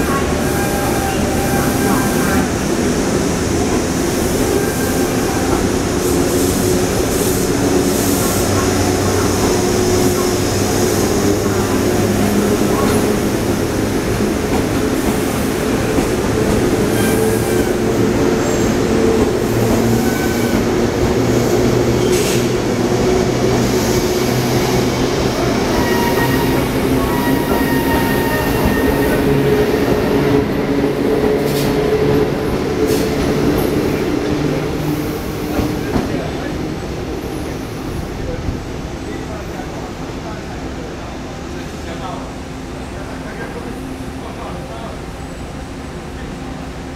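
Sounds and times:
electric train rolling rumble: 0.0 - 46.9.

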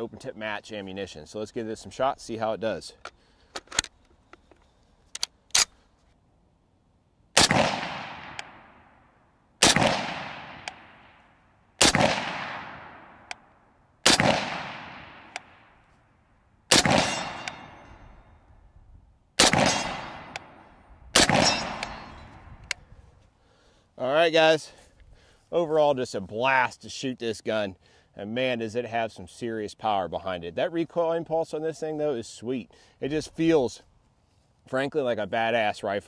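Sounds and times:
rifle loading clicks: 3.0 - 5.8, 15.3 - 15.5
rifle shots with echo: 7.4 - 9.0, 9.6 - 13.4, 14.0 - 15.8, 16.7 - 18.1, 19.4 - 22.4.

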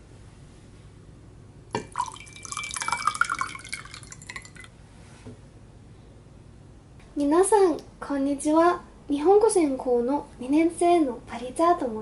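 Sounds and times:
water poured into a glass: 1.8 - 4.8.

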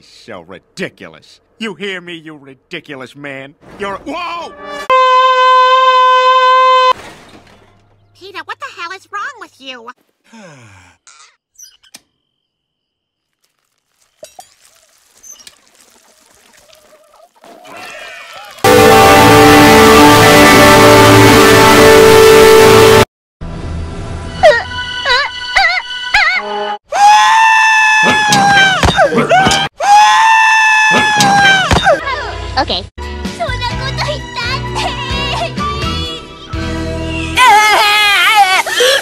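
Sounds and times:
distorted console startup chord: 18.7 - 23.0
cartoon character crying wail: 37.4 - 39.0.

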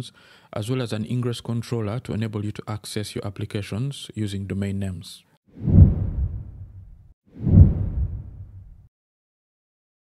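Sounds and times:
low whoosh sound effect: 5.6 - 8.9.

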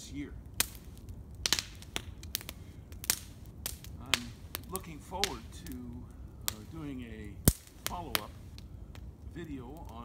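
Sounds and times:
campfire crackling and popping: 0.0 - 10.0.

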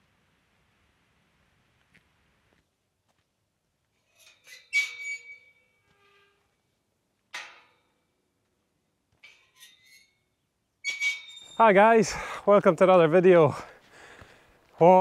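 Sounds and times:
metal gate clicks and clanks: 4.0 - 6.4, 7.3 - 8.1, 9.1 - 10.2, 10.8 - 11.8.

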